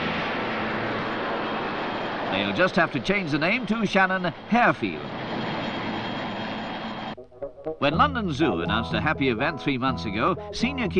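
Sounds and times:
aircraft engine rushing: 0.0s - 10.9s.

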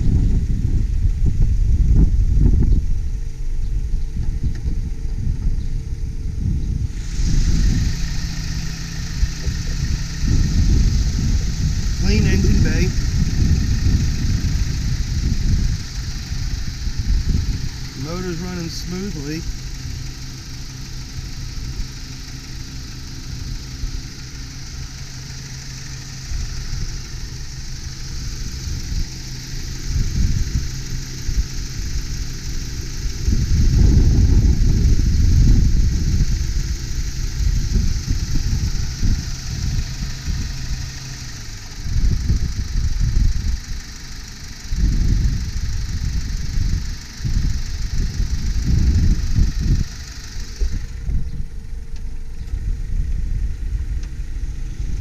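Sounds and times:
car engine idling: 0.0s - 55.0s
irregular low rumbling: 0.0s - 55.0s.

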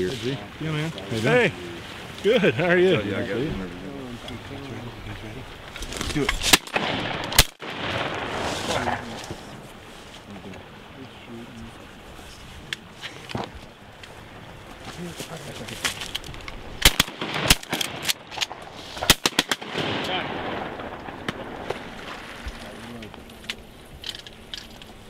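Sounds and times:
shotgun shots: 6.4s - 9.0s, 16.8s - 21.9s.

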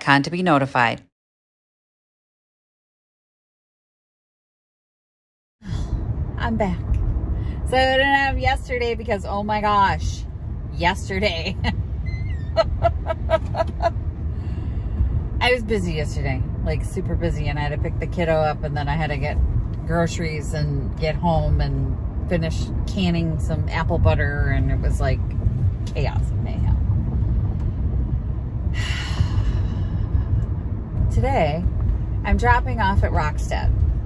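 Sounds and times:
car road noise rumble: 5.6s - 34.0s
woman laughing: 12.3s - 13.9s.

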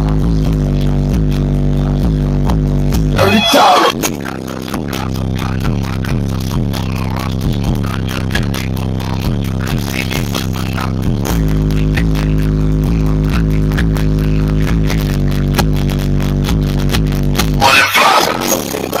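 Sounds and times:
bass-heavy electronic music: 0.0s - 19.0s.

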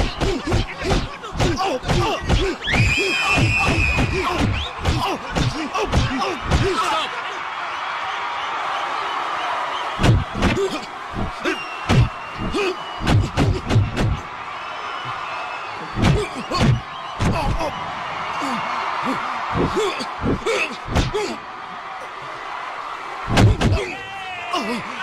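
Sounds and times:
punch and kick impacts: 0.0s - 6.8s, 10.0s - 14.2s, 16.0s - 17.6s, 19.6s - 21.2s, 23.3s - 23.9s
crowd din: 0.0s - 25.0s.

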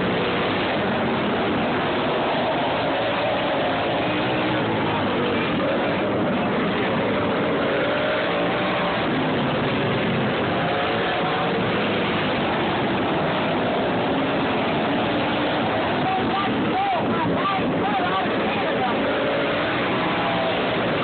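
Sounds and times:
lawn tractor engines racing: 0.0s - 21.0s.

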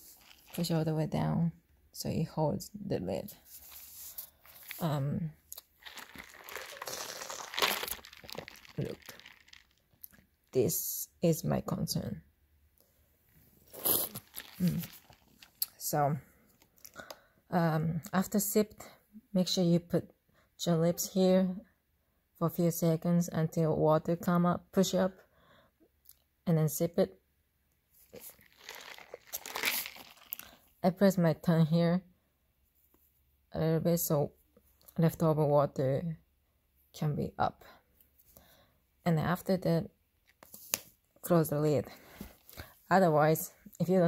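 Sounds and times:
rustling and crinkling handling noise: 0.0s - 0.8s, 3.3s - 10.3s, 13.4s - 15.7s, 28.0s - 30.6s.

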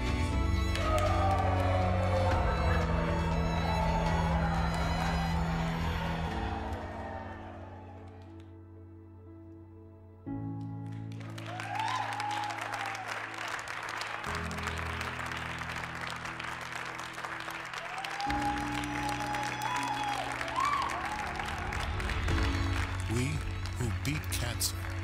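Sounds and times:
people applauding: 0.0s - 8.5s, 10.7s - 25.0s
background music with sustained chords: 0.0s - 25.0s.

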